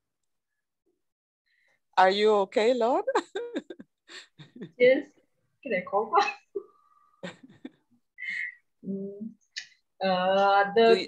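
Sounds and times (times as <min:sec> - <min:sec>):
laughter through video call: 0:03.1 - 0:04.8, 0:06.2 - 0:08.4.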